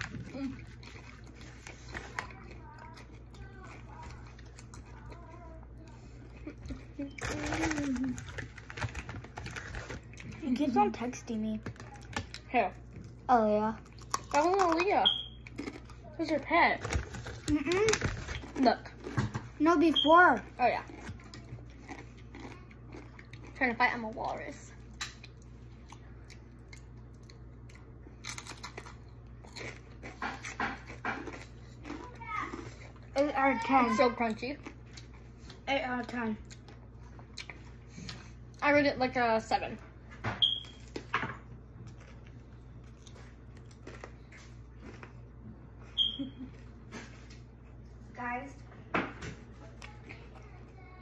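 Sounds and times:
crunching of raw pepper: 13.8s - 16.0s
child murmuring: 32.0s - 34.4s.

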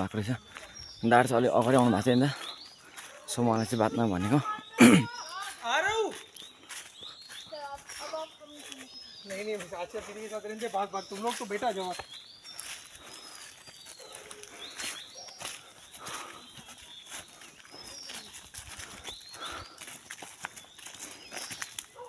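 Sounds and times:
footsteps crunching through dry leaves: 0.0s - 22.0s.

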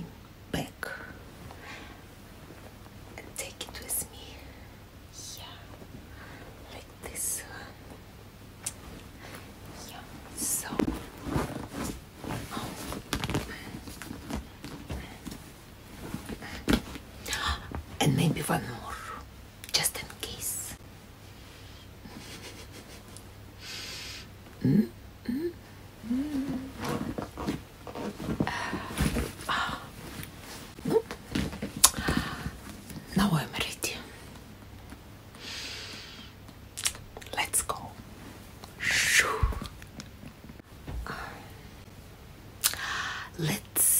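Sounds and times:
woman whispering: 0.5s - 1.2s, 3.2s - 5.8s, 6.6s - 7.8s, 9.7s - 10.9s, 17.3s - 20.8s, 33.1s - 34.2s, 37.2s - 38.0s, 43.2s - 43.9s.

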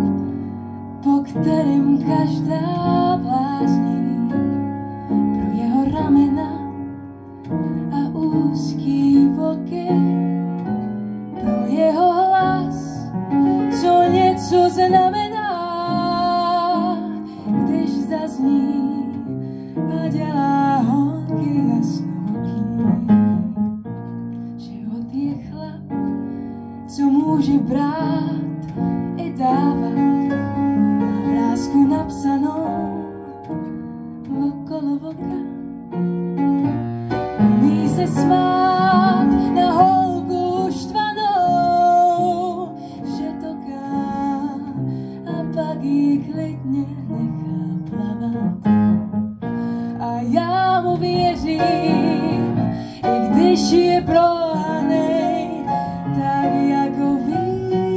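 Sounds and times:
piano accompaniment: 0.0s - 57.9s
woman singing blues: 1.0s - 4.5s, 5.4s - 6.7s, 7.9s - 10.2s, 11.4s - 13.1s, 13.7s - 23.6s, 24.6s - 26.0s, 26.9s - 30.4s, 31.1s - 33.3s, 34.2s - 35.5s, 37.4s - 48.9s, 50.0s - 57.9s.

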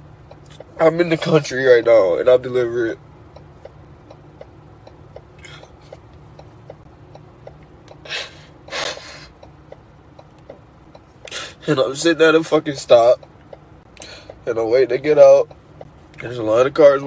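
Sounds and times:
truck engine idling hum: 0.0s - 17.0s.

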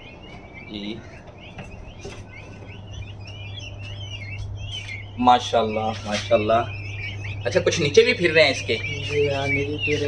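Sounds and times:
chicks peeping: 0.0s - 10.0s
steady low hum: 0.0s - 10.0s.

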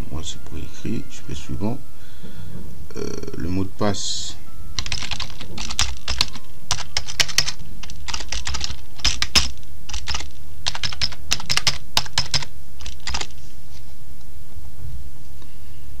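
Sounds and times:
steady low hum: 0.0s - 16.0s
keyboard keys clicking: 4.8s - 13.4s.

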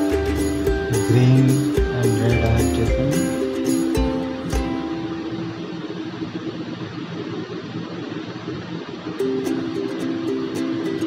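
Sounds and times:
held low music note: 0.0s - 7.6s
steady hiss: 0.0s - 11.0s.

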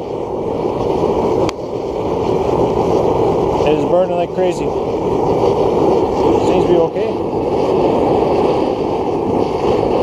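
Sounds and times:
oil burner roaring: 0.0s - 10.0s.

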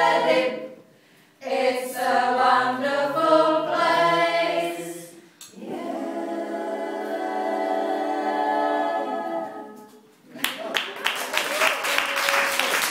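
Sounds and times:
choir singing a cappella: 0.0s - 10.1s.

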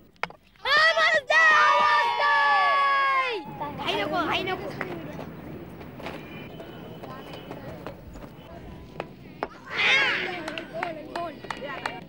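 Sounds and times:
distant voices calling out: 3.1s - 12.0s.

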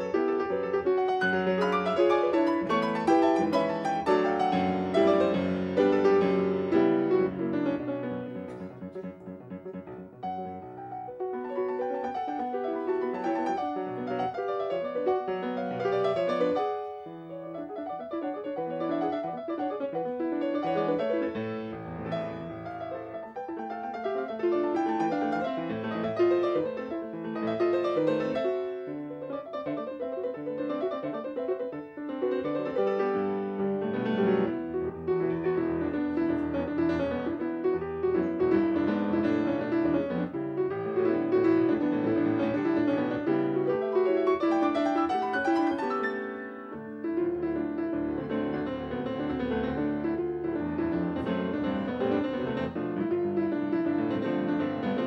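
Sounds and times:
grand piano playing: 0.0s - 55.0s.

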